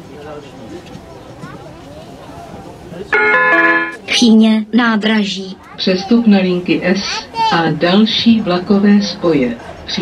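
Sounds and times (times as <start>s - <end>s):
electronic announcement chime: 3.2s - 4.0s
low cabin background: 3.2s - 4.1s.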